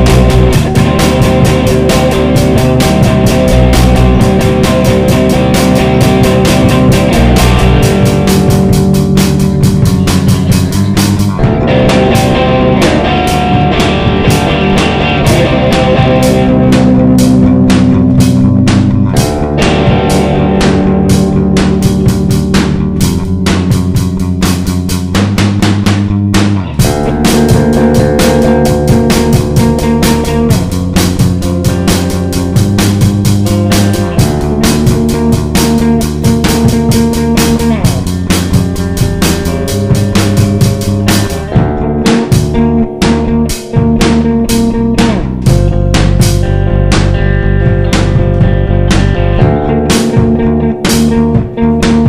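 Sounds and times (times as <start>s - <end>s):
bass guitar: 0.0s - 52.0s
drum kit beating: 0.0s - 52.0s
electric guitar: 0.0s - 52.0s
experimental rock instrumental: 0.0s - 52.0s.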